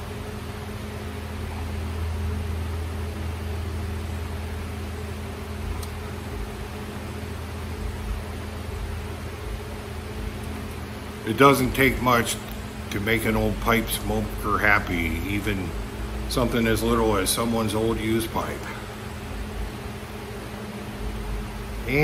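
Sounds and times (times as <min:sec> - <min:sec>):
electric fan humming: 0:00.0 - 0:22.0.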